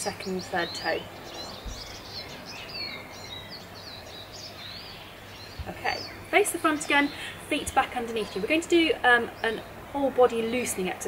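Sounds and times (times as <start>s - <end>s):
birds chirping and whistling: 0.0s - 8.6s.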